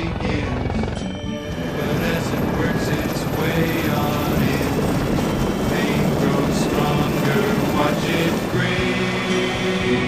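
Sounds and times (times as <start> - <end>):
helicopter engine: 0.0 - 10.0
helicopter rotor blades beating: 0.0 - 10.0.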